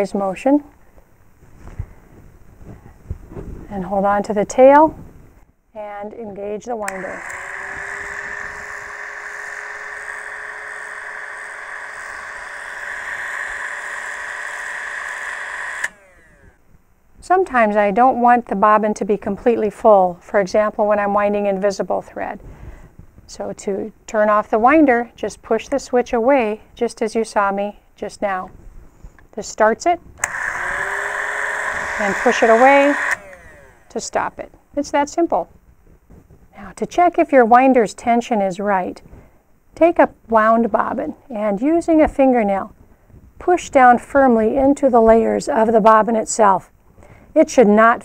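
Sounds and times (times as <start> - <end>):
bobbin winder motor whining: 6.8 - 16.6, 30.2 - 34.1.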